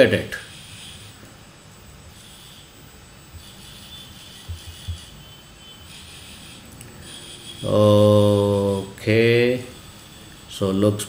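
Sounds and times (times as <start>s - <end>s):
steady background hum: 0.0s - 11.0s
servo motors whining faintly: 0.3s - 11.0s.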